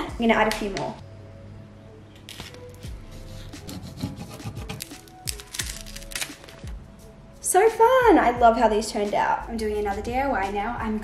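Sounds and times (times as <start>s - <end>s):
faint background music: 0.0s - 11.0s
paper rustling: 2.2s - 2.9s, 3.8s - 6.7s
scratchy rubbing on paper: 2.9s - 5.1s.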